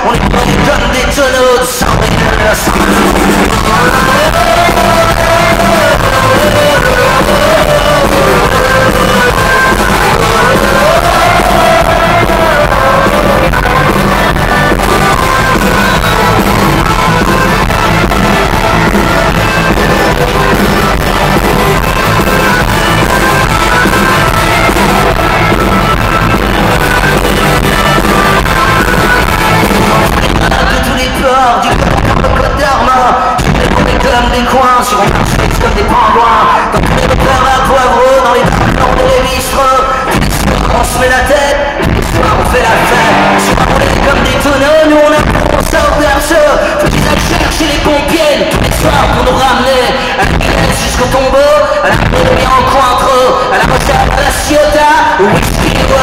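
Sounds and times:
live rock band: 0.0 - 56.0.

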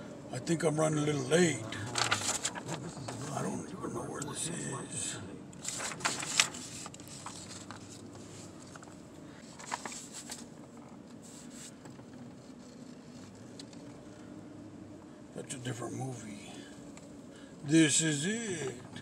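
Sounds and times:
faint low car hum: 0.0 - 19.0.

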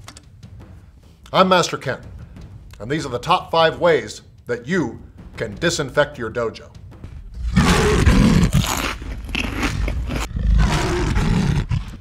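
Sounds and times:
tiger roar: 7.3 - 12.0.

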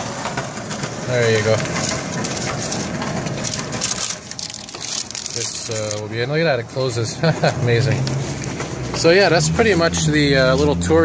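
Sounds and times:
paper receipt crinkling: 1.3 - 6.2.

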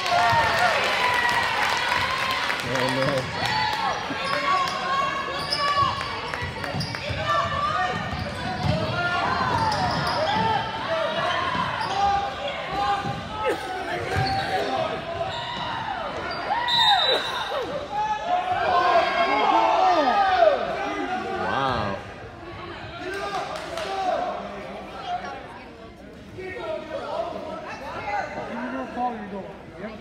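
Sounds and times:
crowd and player voices: 0.0 - 30.0
sneaker squeaks: 4.3 - 7.3, 8.0 - 8.8, 9.5 - 12.4, 14.0 - 17.5.

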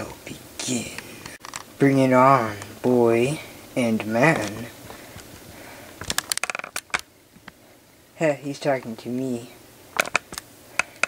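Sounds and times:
plastic toy pieces clicking: 6.1 - 7.0.

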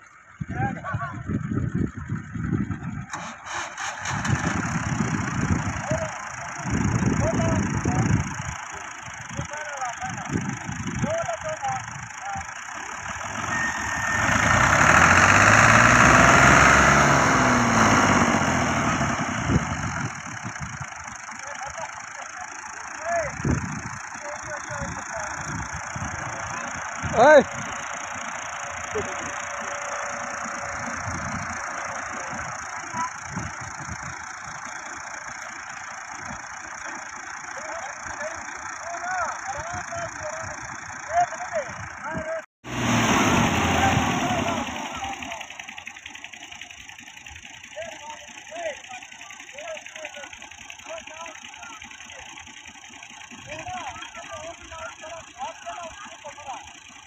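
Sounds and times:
diesel tractor engines labouring: 0.0 - 57.0.

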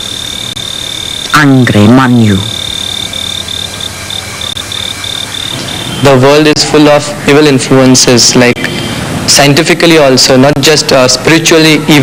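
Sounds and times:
insect chirping: 0.0 - 6.5
steady background hiss: 0.0 - 12.0.

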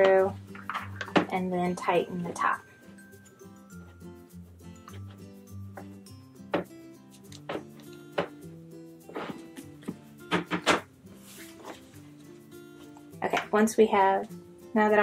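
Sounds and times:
background music: 0.0 - 15.0
fabric rustle: 11.1 - 13.0.

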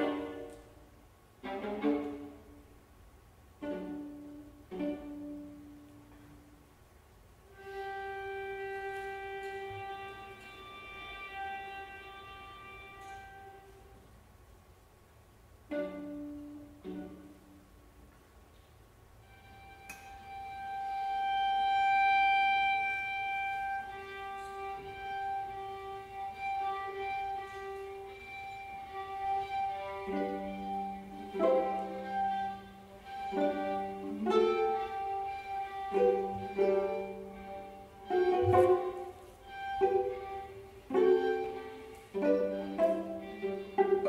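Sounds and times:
violas playing slowly: 0.0 - 14.4, 15.1 - 44.0.

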